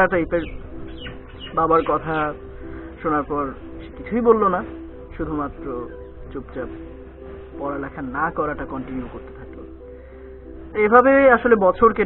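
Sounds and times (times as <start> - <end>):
man talking: 0.0 - 0.6, 1.5 - 2.4, 3.0 - 6.8, 7.5 - 9.7, 10.7 - 12.0
high falling bird chirps: 0.2 - 2.8.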